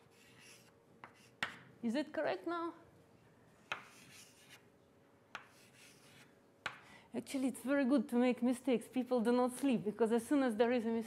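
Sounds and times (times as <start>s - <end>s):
chalk scratching on chalkboard: 0.0s - 1.6s, 3.6s - 4.6s, 5.4s - 6.3s.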